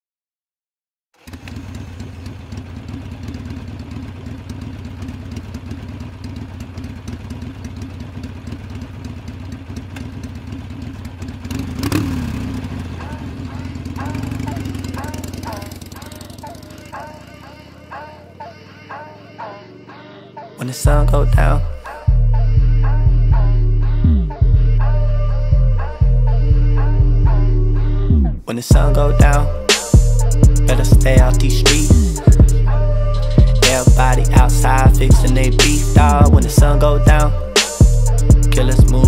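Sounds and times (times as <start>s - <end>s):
motorcycle engine idling: 1.2s - 27.6s, 28.7s - 39.0s
music with hummed voice: 12.6s - 39.0s.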